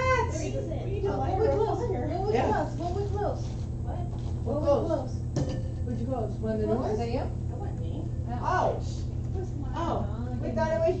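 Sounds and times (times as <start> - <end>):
low hum: 0.0 - 11.0
people talking indistinctly: 0.0 - 11.0.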